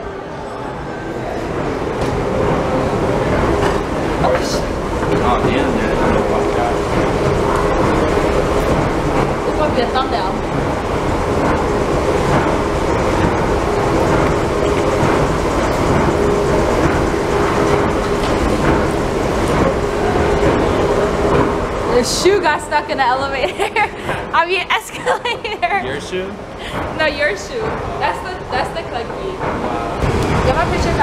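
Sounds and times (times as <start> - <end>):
escalator rumbling: 0.0 - 31.0.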